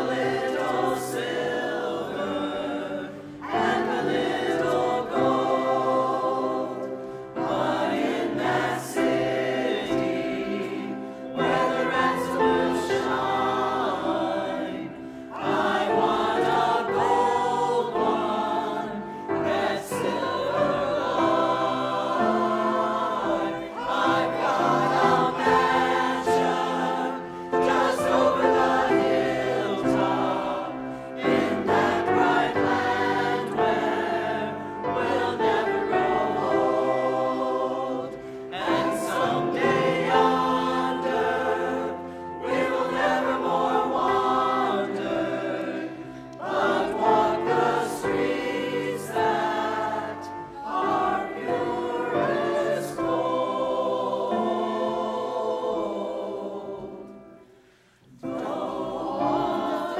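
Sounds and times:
piano accompaniment: 0.0s - 57.4s
choir singing gospel song: 0.0s - 59.9s.

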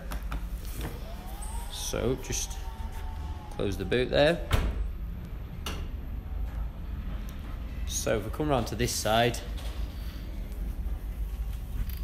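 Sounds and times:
low steady rumble: 0.5s - 12.0s.

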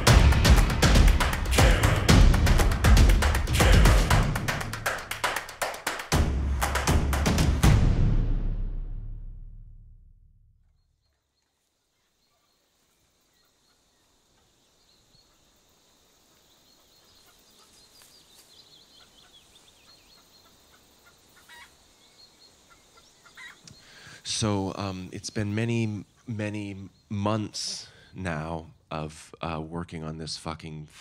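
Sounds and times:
drum-heavy music: 0.0s - 10.0s.

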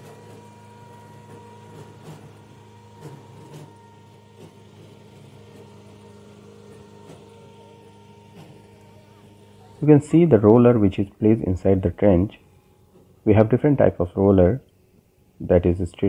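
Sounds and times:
winch machine humming: 0.0s - 16.0s.

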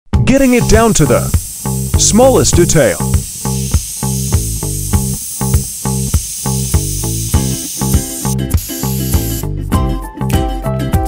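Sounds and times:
background music with steady beat: 0.1s - 11.0s
airbrush spraying hiss: 0.6s - 9.5s.

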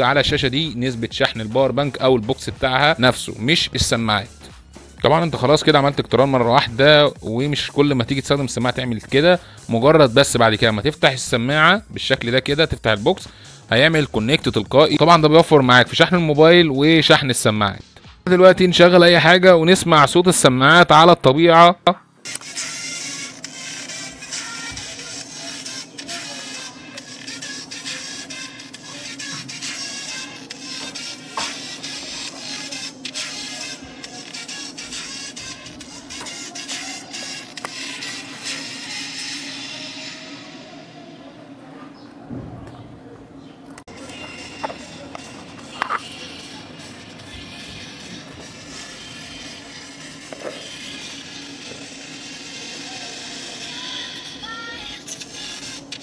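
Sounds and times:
song through tiny earbud speakers: 22.3s - 39.2s.

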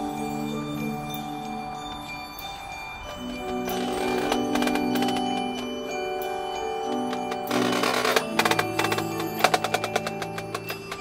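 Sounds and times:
marimbas holding sustained chord: 0.0s - 11.0s.

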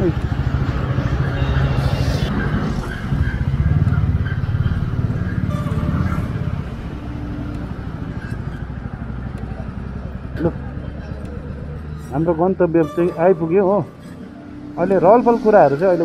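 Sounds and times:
motorcycle engine running: 0.0s - 13.0s.

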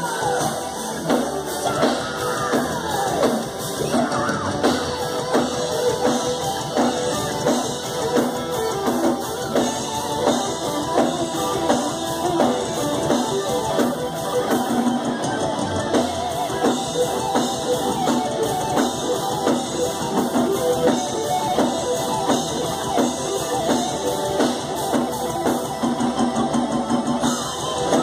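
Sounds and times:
drum kit beat: 0.0s - 28.0s
electric guitars: 0.0s - 28.0s.

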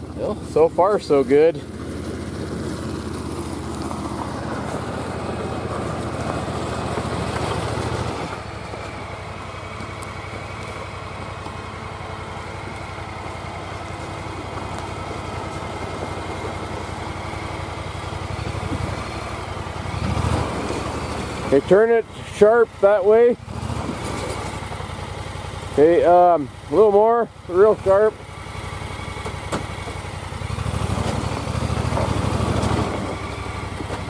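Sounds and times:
utility vehicle engine running: 0.0s - 34.0s.

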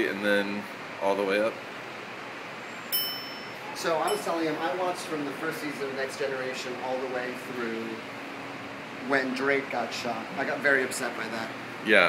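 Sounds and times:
low hiss of room noise: 0.0s - 12.0s
elevator chime ding: 2.9s - 4.5s.

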